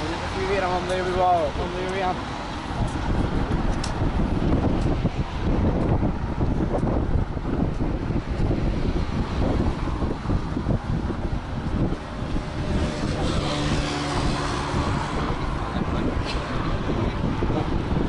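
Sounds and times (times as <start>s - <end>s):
wind buffeting microphone: 0.0s - 18.0s.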